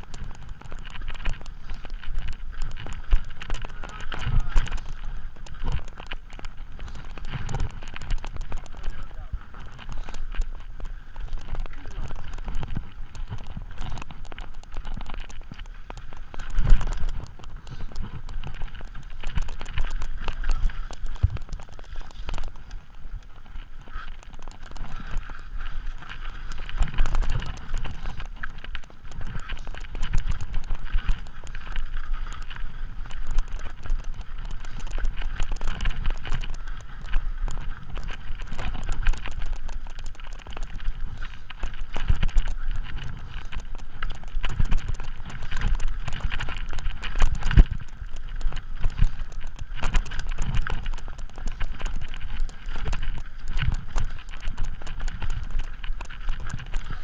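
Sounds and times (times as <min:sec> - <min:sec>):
bike rattling over loose stones: 0:00.0 - 0:57.0
wheels thumping on rocks: 0:00.0 - 0:57.0.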